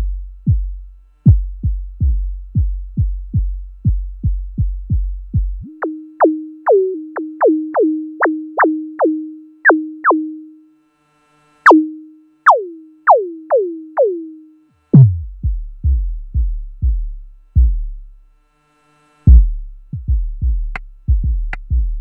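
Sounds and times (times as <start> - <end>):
synthesized kick thuds: 0.0 - 9.1, 15.0 - 18.0, 19.3 - 22.0
held synth tone: 5.7 - 10.7, 11.7 - 14.6
sharp downward synth zaps: 11.6 - 14.4.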